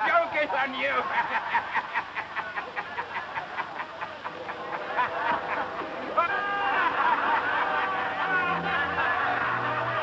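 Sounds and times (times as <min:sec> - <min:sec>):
men laughing: 0:01.0 - 0:10.0.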